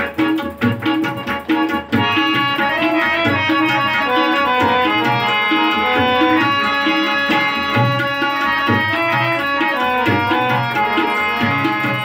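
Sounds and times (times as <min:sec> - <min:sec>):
harmonium melody: 0:00.0 - 0:12.0
tabla rhythm: 0:00.0 - 0:12.0.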